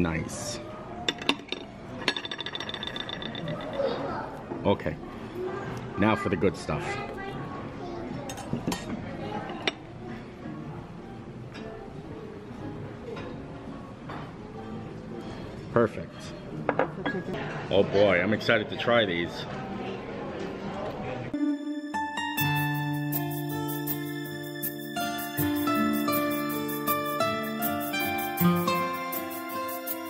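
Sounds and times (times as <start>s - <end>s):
tableware clinking: 1.0s - 4.1s, 8.3s - 9.8s, 16.1s - 17.4s
soft background music: 9.0s - 17.2s, 18.0s - 30.0s.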